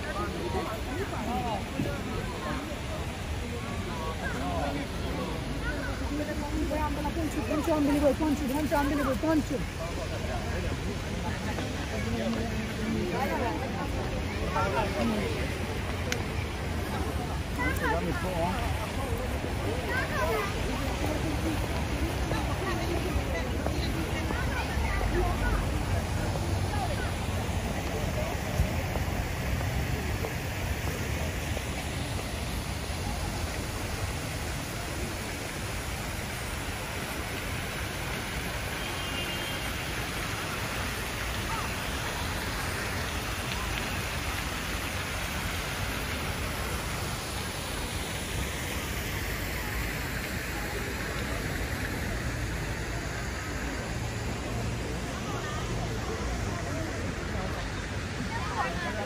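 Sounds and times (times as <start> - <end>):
falling water hiss: 0.0 - 59.0.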